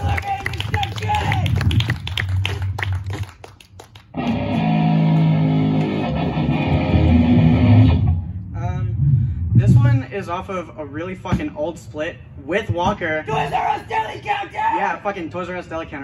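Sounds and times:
electric guitar chord ringing: 4.2 - 8.4.

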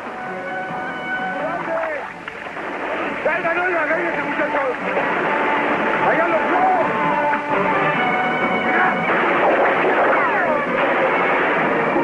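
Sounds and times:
film score music: 0.0 - 12.0
splashing through river water: 1.6 - 7.8.

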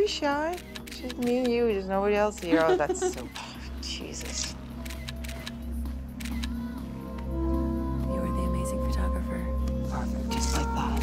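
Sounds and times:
background music with low pulse: 0.0 - 11.0
camera shutter clicks: 0.5 - 1.6, 4.2 - 5.6, 6.2 - 6.6.

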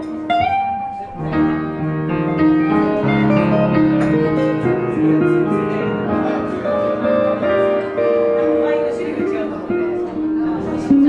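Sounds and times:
electric guitar note: 0.0 - 11.0
piano chords: 0.0 - 11.0.

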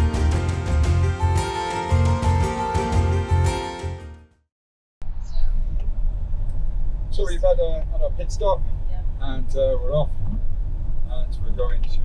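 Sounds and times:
road and engine rumble in vehicle: 5.0 - 12.0
man talking: 7.2 - 8.6, 9.2 - 10.1, 11.1 - 12.0.

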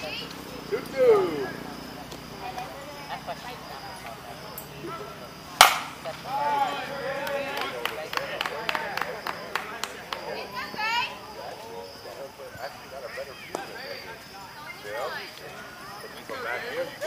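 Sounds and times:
players shouting: 0.0 - 3.2, 4.4 - 17.0
bat hitting ball crack: 5.6 - 6.1.

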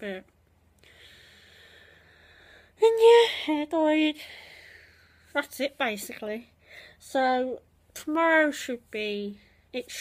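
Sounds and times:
person breathing in: 0.8 - 2.8
person speaking: 2.8 - 4.3, 5.3 - 10.0.

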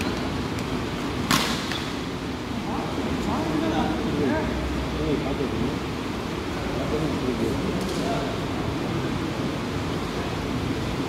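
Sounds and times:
steady background hiss: 0.0 - 11.0
sharp smack: 1.2 - 1.9.

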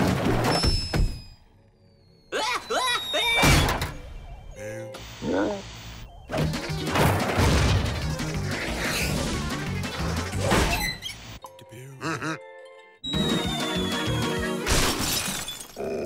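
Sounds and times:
busy cartoon music: 6.3 - 14.9.

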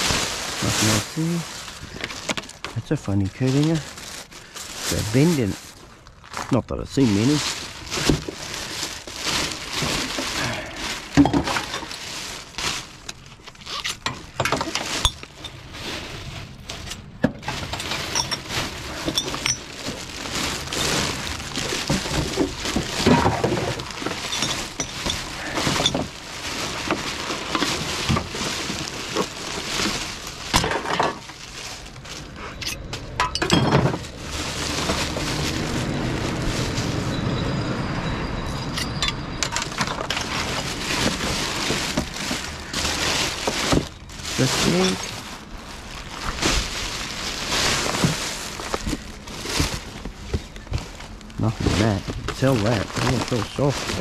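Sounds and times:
plastic bags rustling: 0.0 - 38.3, 39.1 - 54.0
glass bottles clinking: 11.1 - 12.0, 14.0 - 15.6, 17.4 - 29.4, 32.6 - 34.1, 38.5 - 45.2.

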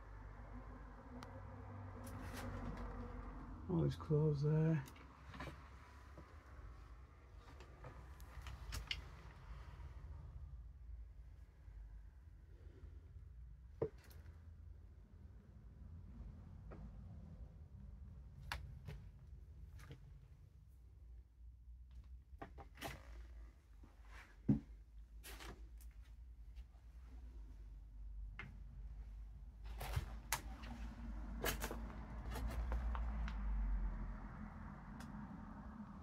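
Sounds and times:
low steady rumble: 0.0 - 36.0
steady low rumble: 25.8 - 36.0.

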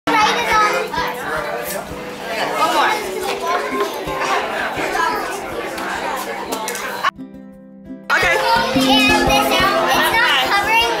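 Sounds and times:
crowd of people talking: 0.1 - 11.0.

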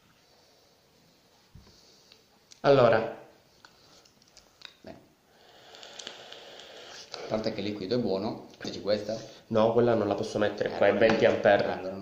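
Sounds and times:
faint crackles: 3.6 - 7.6
airy hiss of vaping draw: 5.3 - 7.5.

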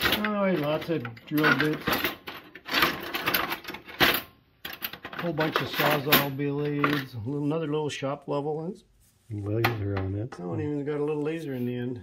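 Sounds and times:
metal tools clattering in drawer: 0.0 - 7.2.

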